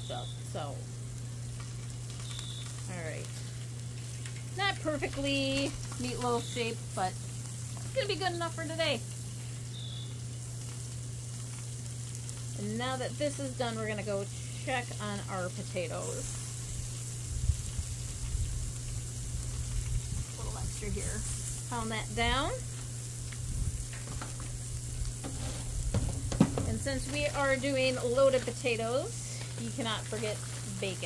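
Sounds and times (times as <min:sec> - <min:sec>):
meat sizzling on a griddle: 0:00.0 - 0:31.0
steady low hum: 0:00.0 - 0:31.0.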